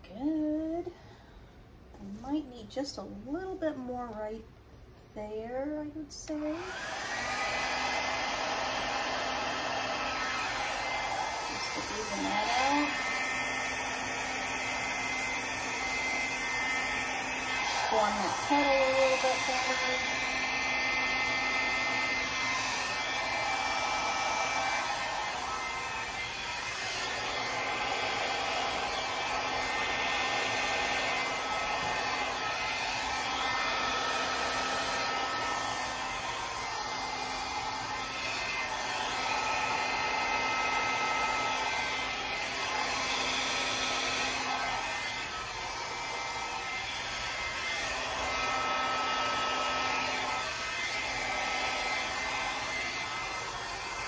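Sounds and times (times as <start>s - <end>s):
blow dryer blowing air: 6.3s - 54.0s.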